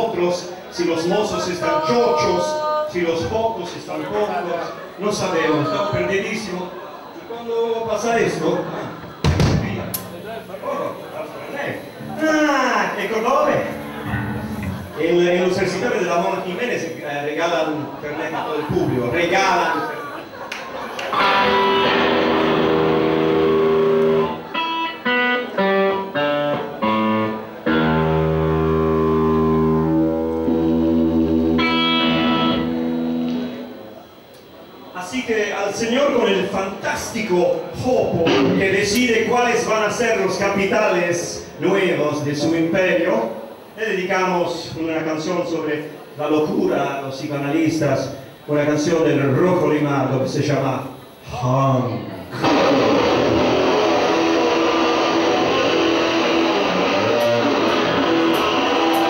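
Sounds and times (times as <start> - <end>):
electric guitar chords with band: 13.7 - 15.0, 21.1 - 33.7, 52.3 - 59.0.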